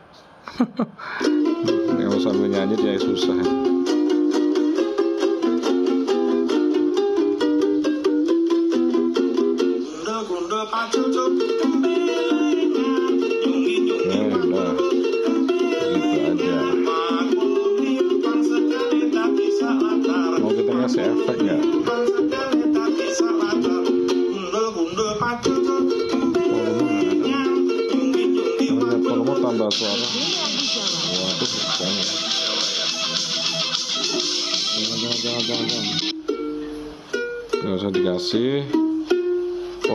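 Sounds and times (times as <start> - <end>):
ukulele plucked and strummed: 1.1 - 39.9.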